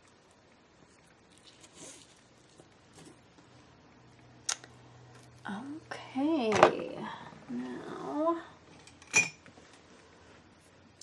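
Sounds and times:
faint rustling of paper: 0:00.0 - 0:03.8.

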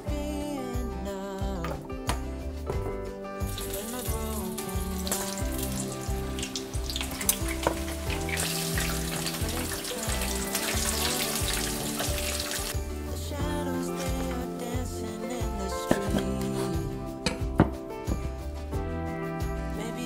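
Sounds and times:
background music: 0:00.0 - 0:20.0
fritters sizzling in hot oil: 0:03.5 - 0:12.8.

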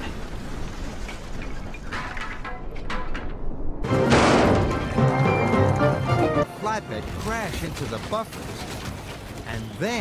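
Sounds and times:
loud crash-like burst: 0:03.2 - 0:05.1
background music: 0:03.8 - 0:07.5.

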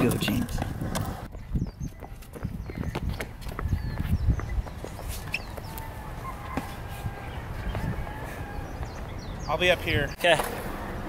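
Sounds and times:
footsteps on concrete: 0:00.0 - 0:09.2.

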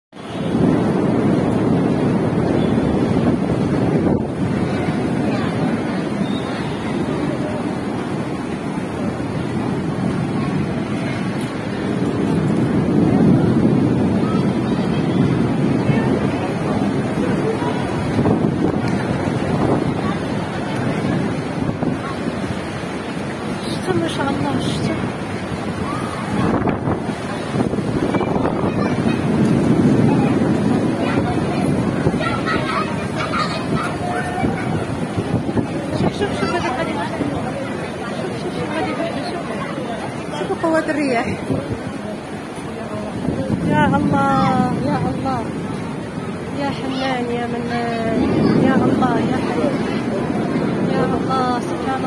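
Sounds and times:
wind blowing on microphone: 0:00.2 - 0:52.0.

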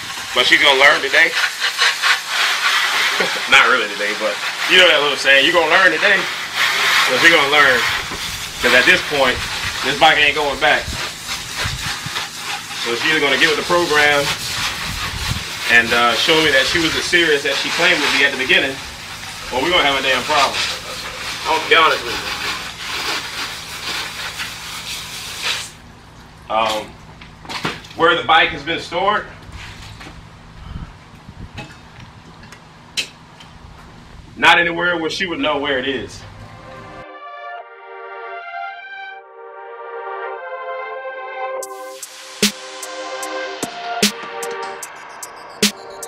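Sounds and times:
hose nozzle spraying water: 0:00.0 - 0:25.8.

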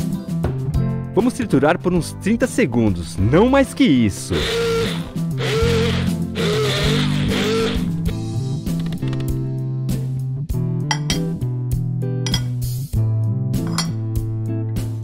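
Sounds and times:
guitar background music: 0:00.0 - 0:15.0
stick blender running: 0:04.3 - 0:08.2.

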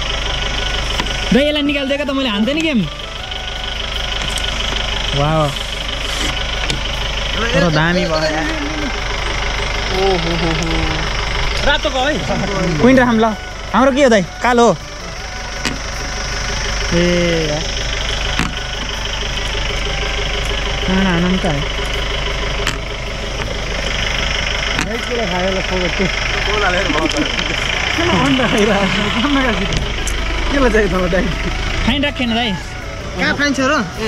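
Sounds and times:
low engine hum: 0:00.0 - 0:34.0
people talking: 0:01.3 - 0:03.0, 0:05.1 - 0:05.8, 0:07.3 - 0:09.0, 0:09.9 - 0:15.8, 0:16.8 - 0:17.8, 0:20.8 - 0:21.7, 0:24.8 - 0:34.0.

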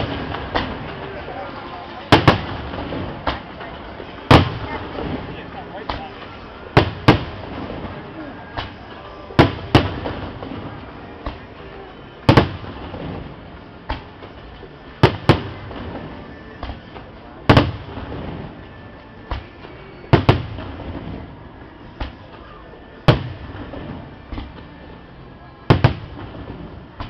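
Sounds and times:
fireworks bangs: 0:00.0 - 0:27.0.

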